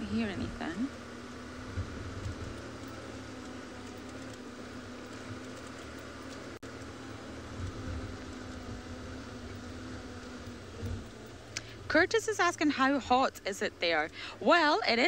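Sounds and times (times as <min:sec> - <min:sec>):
vehicle engine running: 0:00.0 - 0:15.0.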